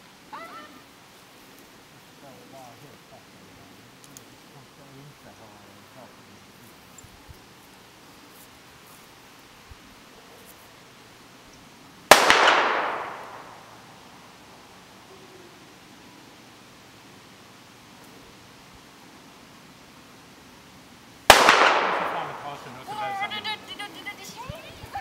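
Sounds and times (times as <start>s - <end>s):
gunshots with ringing echo: 12.1s - 13.7s, 21.3s - 22.6s.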